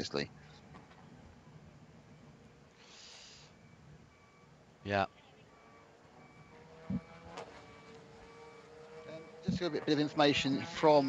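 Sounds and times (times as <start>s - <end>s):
vehicle reversing alarm beeping: 0.6s - 11.0s.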